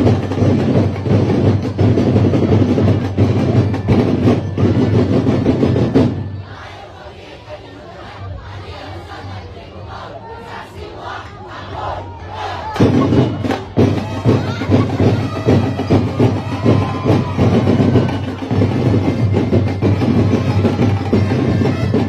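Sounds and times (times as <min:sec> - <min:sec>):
crowd shouting: 0:03.2 - 0:22.0
drum-driven dance music: 0:11.8 - 0:22.0.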